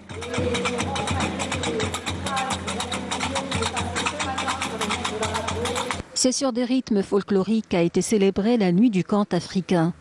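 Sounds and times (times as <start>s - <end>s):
iron castanets clattering: 0.0s - 6.0s
low drum beat: 0.0s - 6.0s.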